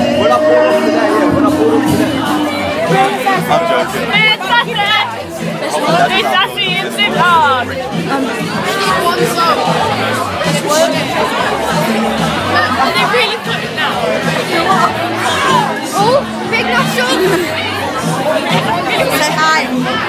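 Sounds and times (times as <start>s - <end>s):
crowd chattering and shouting: 0.0s - 20.0s
music with steady beat: 0.0s - 20.0s.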